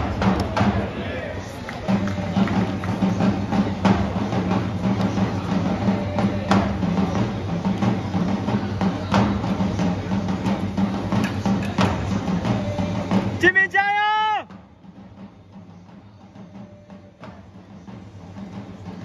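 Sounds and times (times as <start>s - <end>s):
crowd noise: 0.0s - 19.0s
drums beating steady rhythm: 0.0s - 19.0s.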